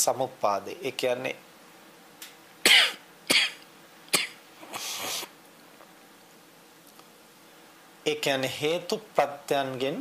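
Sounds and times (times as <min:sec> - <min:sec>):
man coughing: 0:02.7 - 0:04.4.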